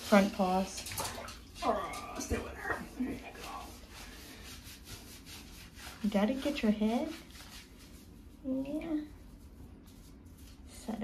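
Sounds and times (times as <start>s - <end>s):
hands scrubbing wet dog coat: 0.0s - 11.0s.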